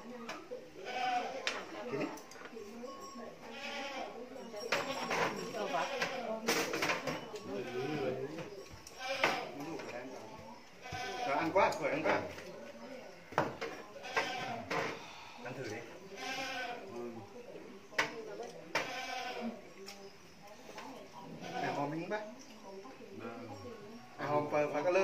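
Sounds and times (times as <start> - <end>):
people talking indistinctly: 0.0 - 25.0.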